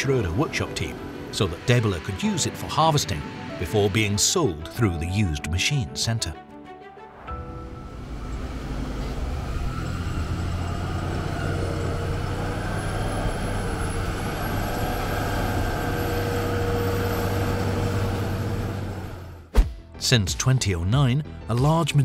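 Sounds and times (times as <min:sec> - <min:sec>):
forage harvester engine drone: 0:00.0 - 0:04.3, 0:07.6 - 0:19.4
faint high whine rising in pitch: 0:07.4 - 0:19.2.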